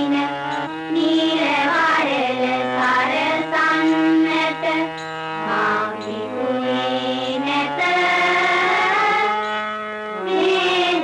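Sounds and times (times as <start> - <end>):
women singing long notes: 0.0 - 9.6, 10.2 - 11.0.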